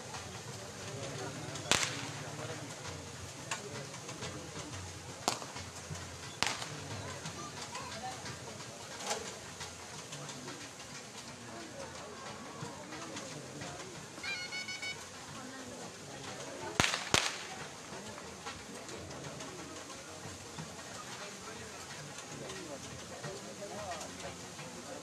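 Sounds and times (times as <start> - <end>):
whip cracks: 1.7 - 2.2, 5.3 - 5.6, 6.4 - 6.9, 16.8 - 17.7.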